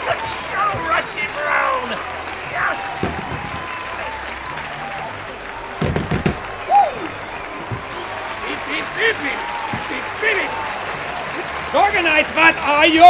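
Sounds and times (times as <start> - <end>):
crowd applauding and cheering: 0.0 - 13.0
whoops: 1.6 - 5.8, 6.4 - 11.5
knocks: 3.0 - 3.7, 5.8 - 6.4.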